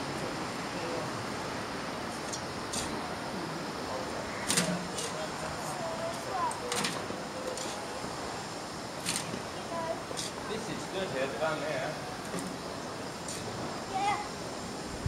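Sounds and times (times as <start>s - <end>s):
faint distant voices: 0.0s - 14.8s
spades digging soil: 2.7s - 3.0s.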